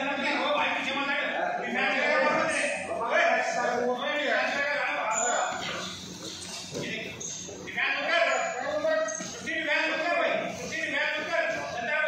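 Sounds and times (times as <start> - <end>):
people talking and calling out: 0.0 - 12.0.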